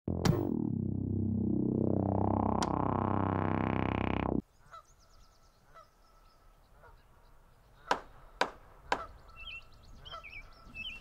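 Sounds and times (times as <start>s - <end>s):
synthesizer music: 0.1s - 4.4s
honking bird calls: 7.8s - 11.0s.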